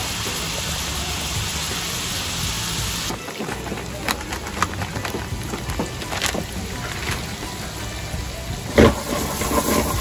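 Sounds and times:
vegetables sizzling in hot oil: 0:00.0 - 0:03.2, 0:05.4 - 0:10.0
oil popping: 0:03.1 - 0:08.0.

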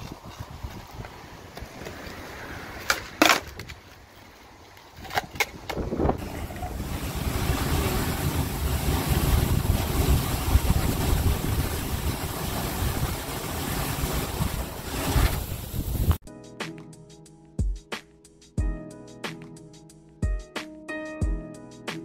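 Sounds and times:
wind buffeting microphone: 0:00.0 - 0:02.8, 0:04.9 - 0:16.2
skateboard clacking on concrete: 0:02.8 - 0:04.0, 0:05.0 - 0:05.9.

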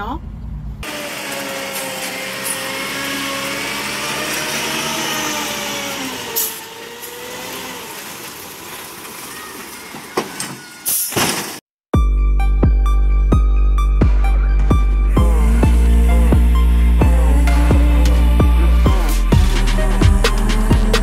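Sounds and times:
heavy truck engine with whine: 0:00.0 - 0:10.2, 0:14.1 - 0:21.0.

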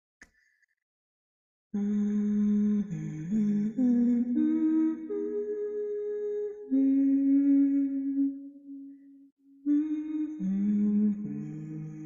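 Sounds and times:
two voices humming in harmony: 0:01.8 - 0:09.0, 0:09.7 - 0:12.0.

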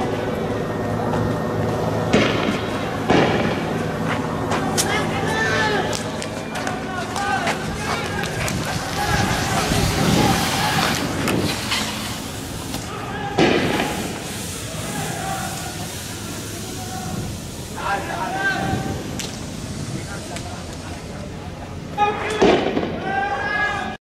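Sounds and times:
sharp bangs: 0:01.2 - 0:16.4, 0:22.1 - 0:23.1
men shouting: 0:06.7 - 0:11.2, 0:12.8 - 0:14.1, 0:14.7 - 0:16.0.

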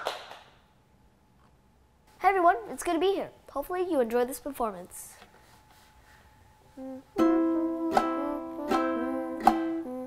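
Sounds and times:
people clapping: 0:00.0 - 0:00.6.

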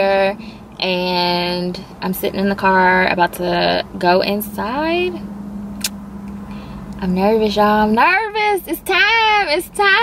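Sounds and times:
low hum inside car: 0:00.0 - 0:10.0
short click: 0:05.8 - 0:06.4.

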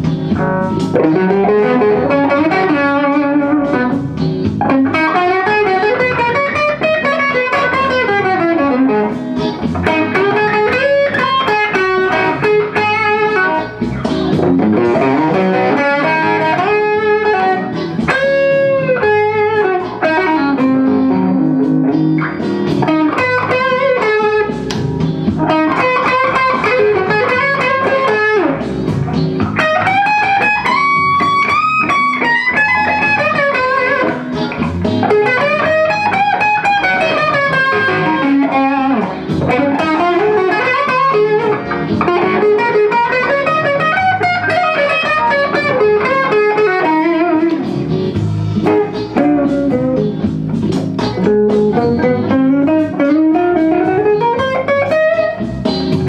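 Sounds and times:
blues electric guitar solo: 0:00.0 - 0:56.0.

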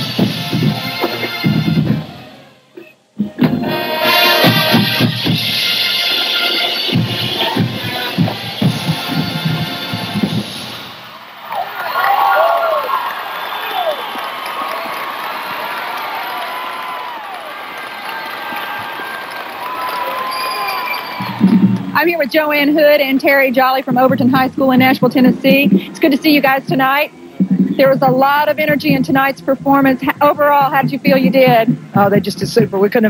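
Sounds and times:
drum strikes: 0:00.0 - 0:02.2, 0:03.2 - 0:11.0, 0:21.2 - 0:22.8, 0:23.8 - 0:33.0
marching band playing: 0:00.0 - 0:11.2, 0:18.1 - 0:33.0
crowd cheering and whistling: 0:05.9 - 0:22.0.

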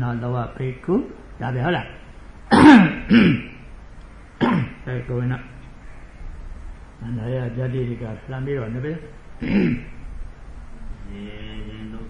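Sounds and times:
man clearing his throat: 0:02.5 - 0:03.6, 0:04.4 - 0:04.8, 0:09.4 - 0:10.0.

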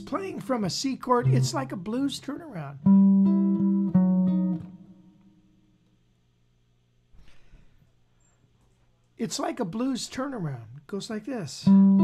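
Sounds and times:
archtop guitar blues lick: 0:01.2 - 0:05.2, 0:11.6 - 0:12.0.

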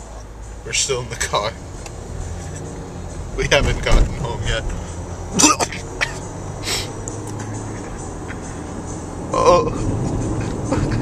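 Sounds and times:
car cabin rumble: 0:00.7 - 0:11.0.

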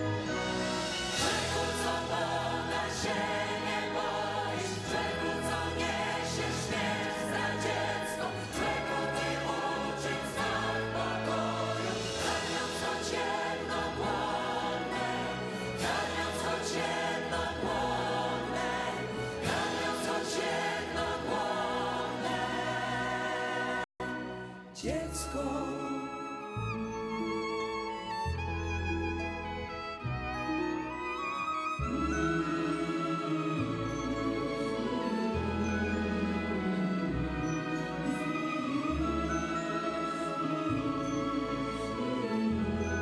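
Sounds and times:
choir singing: 0:00.0 - 0:27.4, 0:31.8 - 0:43.0
symphony orchestra: 0:00.0 - 0:43.0.

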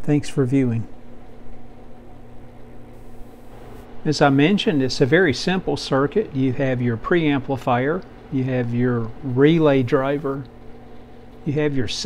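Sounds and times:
low hum: 0:00.8 - 0:12.0
faint hiss: 0:02.9 - 0:12.0.

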